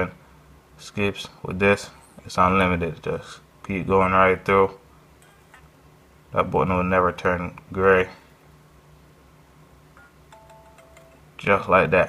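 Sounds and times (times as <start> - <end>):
faint music from phone speaker: 10.0 - 11.5.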